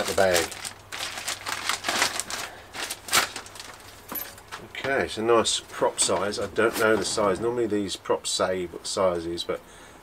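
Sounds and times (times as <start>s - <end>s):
plastic bag crinkling: 0.0s - 4.9s.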